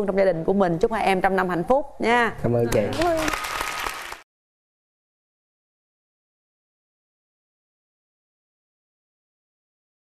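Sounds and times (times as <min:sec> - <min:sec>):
person speaking: 0:02.3 - 0:03.3
audience applause: 0:02.9 - 0:04.2.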